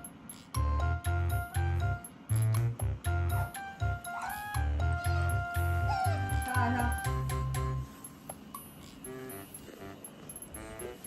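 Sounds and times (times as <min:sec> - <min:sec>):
music with bass beat: 0:00.0 - 0:08.3.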